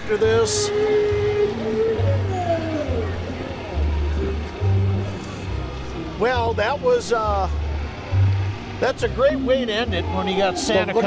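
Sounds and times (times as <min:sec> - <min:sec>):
music with prominent bass line: 0:00.2 - 0:06.6
voice sliding down in pitch: 0:00.4 - 0:03.5.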